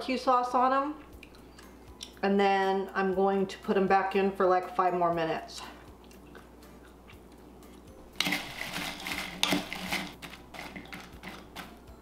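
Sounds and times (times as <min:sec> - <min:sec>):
wooden spoon scraping bowl: 0:08.2 - 0:11.7.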